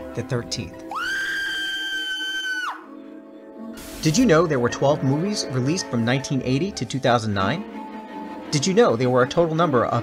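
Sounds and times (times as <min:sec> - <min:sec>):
background music: 0:00.0 - 0:10.0
high-pitched scream: 0:00.9 - 0:02.9.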